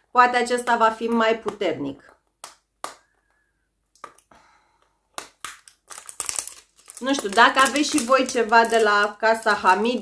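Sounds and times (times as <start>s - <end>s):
packaging crinkling and rustling: 5.3s - 10.0s.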